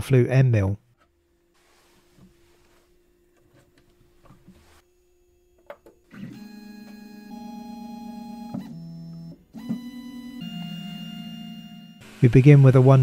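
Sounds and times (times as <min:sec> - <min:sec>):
machine motors whining: 0:01.2 - 0:13.0.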